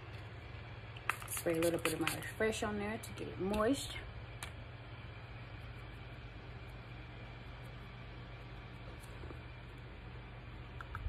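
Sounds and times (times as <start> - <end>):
low hum: 3.1 - 11.0.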